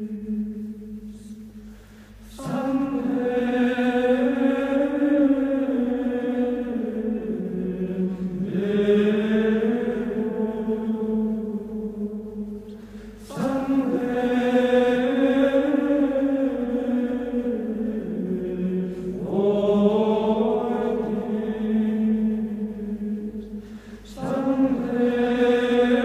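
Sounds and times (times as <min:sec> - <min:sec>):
slow vocal chant: 0:00.0 - 0:26.0.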